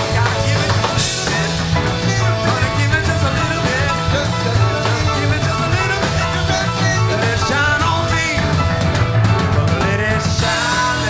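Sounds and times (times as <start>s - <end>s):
driving bass line: 0.0s - 11.0s
drum kit cymbal beat: 0.0s - 11.0s
electric guitar lead lines: 0.0s - 11.0s.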